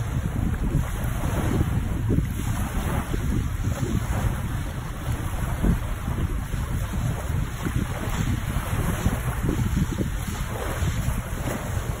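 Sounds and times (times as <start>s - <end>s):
small waves washing onto beach: 0.0s - 12.0s
wind buffeting microphone: 0.0s - 12.0s.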